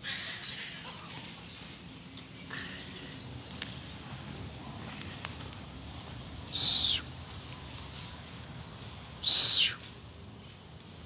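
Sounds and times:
cat hissing: 6.5s - 7.0s, 9.2s - 9.8s.

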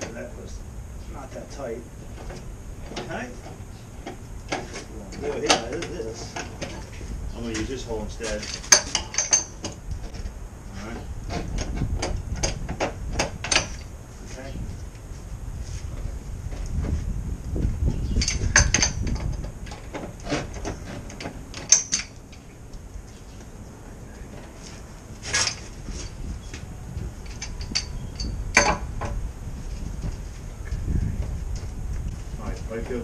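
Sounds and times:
pipe wrench clanking on metal pipe: 8.4s - 9.8s, 11.3s - 13.8s, 18.1s - 22.2s, 27.2s - 28.9s.

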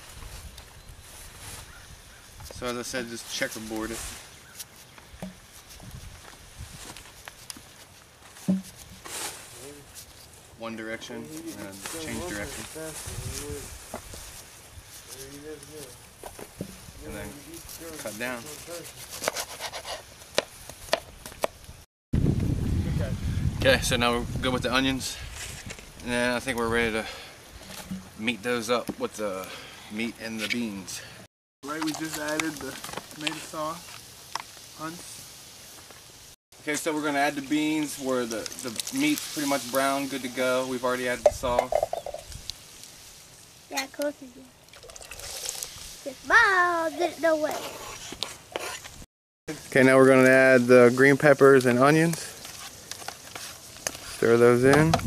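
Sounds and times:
beans pouring from a can: 44.8s - 45.9s.

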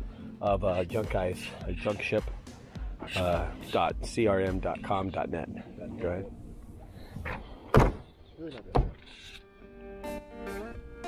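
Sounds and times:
guitar music: 1.0s - 6.6s, 9.3s - 11.0s.

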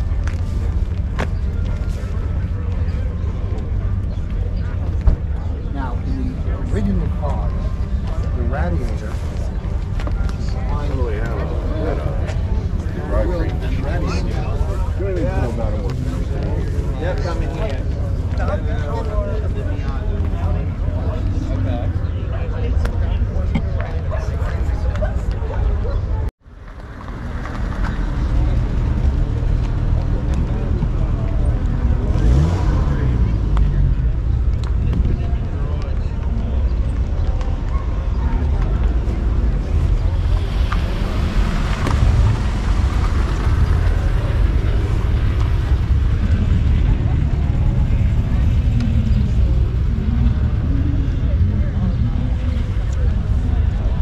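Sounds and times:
distant indistinct voices: 0.0s - 54.0s
wind rumble on microphone: 22.8s - 54.0s.

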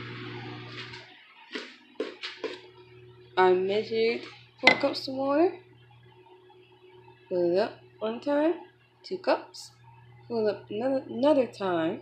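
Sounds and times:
footsteps on hard floor: 0.7s - 2.7s
faint low hum: 2.6s - 12.0s.

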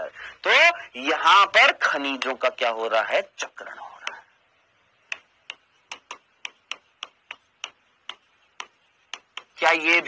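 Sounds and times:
pen tapping on writing board: 5.1s - 10.0s.

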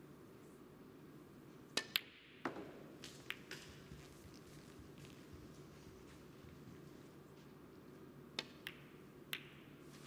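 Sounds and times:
balls clicking together: 8.3s - 9.6s.

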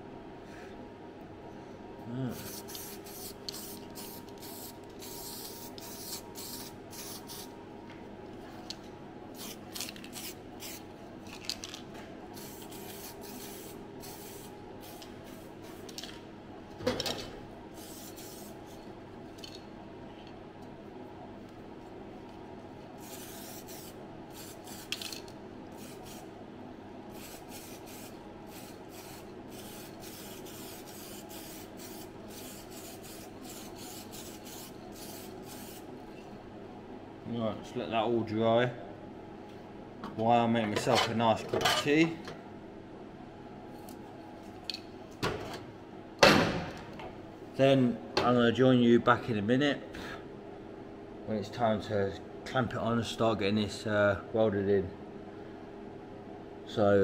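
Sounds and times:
steady low hum: 0.0s - 57.0s
aerosol spray hissing: 2.4s - 7.5s, 17.8s - 18.6s, 23.0s - 25.0s, 27.1s - 35.9s.

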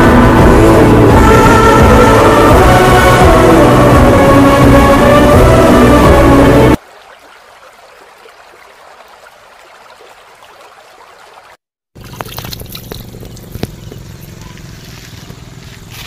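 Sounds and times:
water splashing into puddle: 6.8s - 15.1s.

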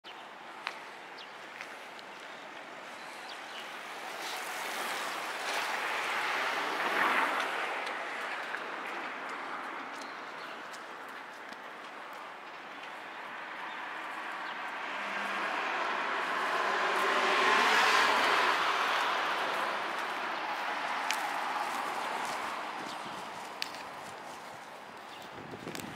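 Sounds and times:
vehicle passing: 3.9s - 9.9s, 13.2s - 24.4s.

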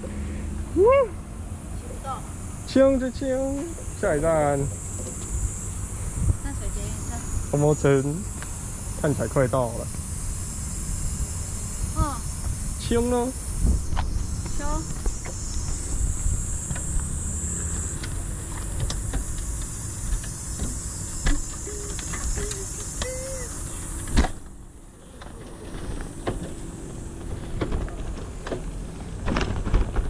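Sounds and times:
wind buffeting microphone: 5.4s - 7.6s, 11.8s - 17.0s
bike clicks and rattles: 17.9s - 24.4s, 27.3s - 30.0s
bike rolling on rough asphalt: 25.2s - 30.0s.

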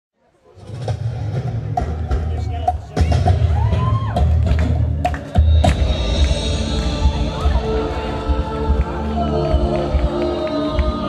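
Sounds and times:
music with heavy bass and drums: 0.7s - 11.0s.

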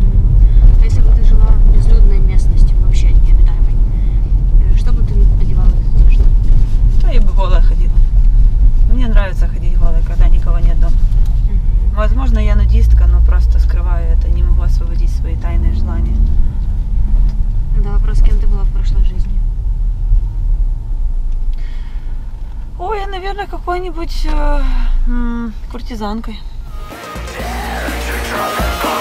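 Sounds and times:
car cabin road rumble: 0.0s - 29.0s
woman talking: 0.7s - 3.8s, 4.6s - 6.4s, 7.0s - 8.1s, 8.9s - 11.0s, 11.9s - 16.3s, 17.7s - 19.5s, 22.8s - 26.5s.

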